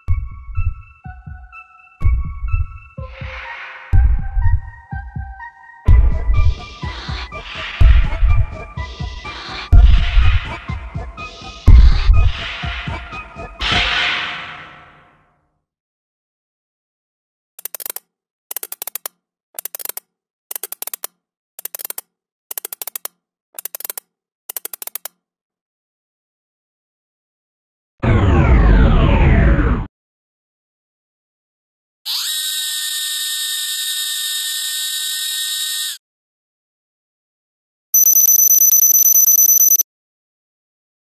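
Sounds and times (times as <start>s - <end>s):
shrill electronic tone with buzz: 38.0s - 39.8s.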